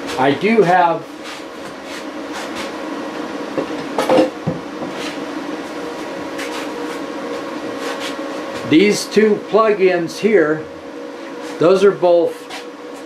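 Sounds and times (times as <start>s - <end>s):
electrical hum: 0.0s - 13.0s.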